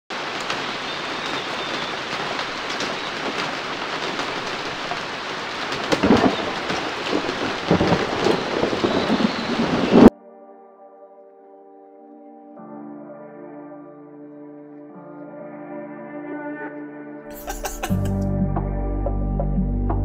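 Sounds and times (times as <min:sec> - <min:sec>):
steady rain: 0:00.1 - 0:10.1
thunder rolling: 0:05.8 - 0:10.1.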